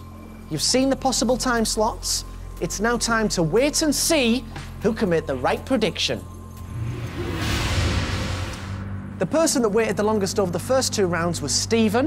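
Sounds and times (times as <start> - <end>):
whoosh: 6.6 - 9.3.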